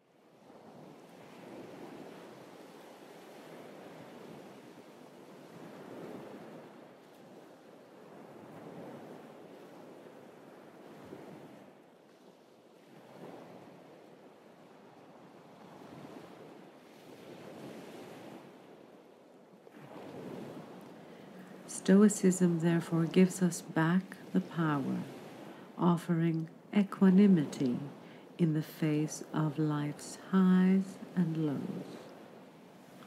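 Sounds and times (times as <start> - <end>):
small waves on pebble beach: 0.3 - 19.1, 19.7 - 21.7, 22.5 - 25.8.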